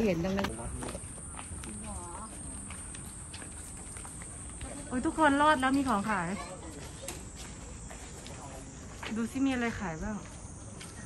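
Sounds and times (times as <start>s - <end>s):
footsteps on paved path: 0.0s - 11.0s.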